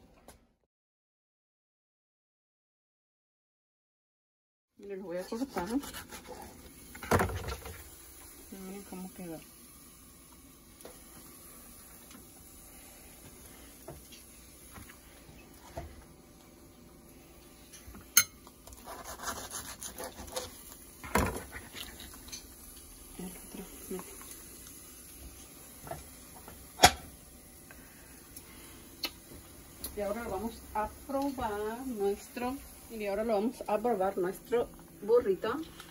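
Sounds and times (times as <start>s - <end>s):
knife sawing through food: 5.4s - 6.6s, 18.7s - 20.6s.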